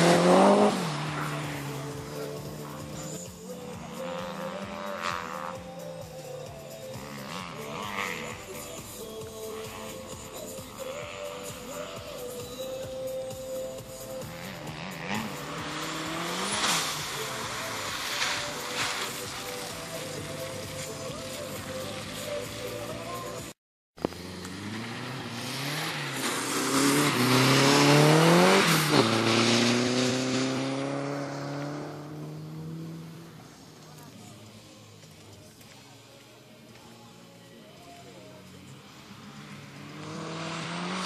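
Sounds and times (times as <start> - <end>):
tyre noise on wet asphalt: 0.0 - 3.8, 14.0 - 41.0
car engine revving hard: 0.0 - 5.6, 7.0 - 8.4, 14.2 - 18.8, 24.1 - 33.3, 39.4 - 41.0.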